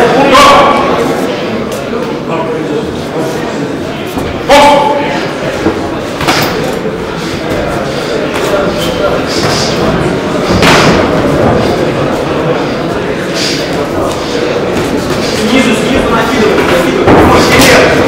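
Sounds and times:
echoing shouting voices: 4.4 - 5.4.

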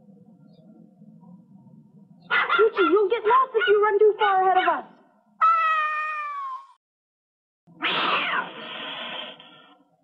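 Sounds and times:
cartoon cat meowing: 5.4 - 6.8, 7.8 - 8.5.

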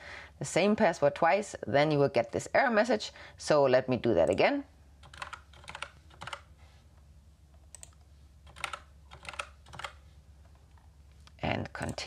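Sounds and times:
typing on computer keyboard: 5.0 - 6.5, 7.7 - 10.0.

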